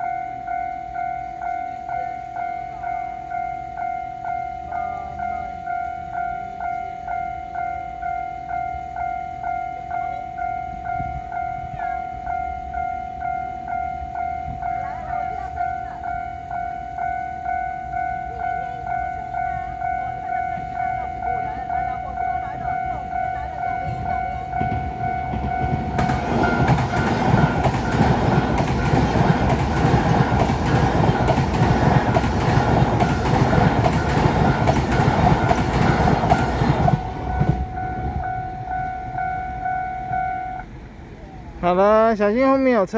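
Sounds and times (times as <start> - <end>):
level crossing warning bell: 0.0 - 42.9
train wheels clattering over rails: 22.8 - 38.3.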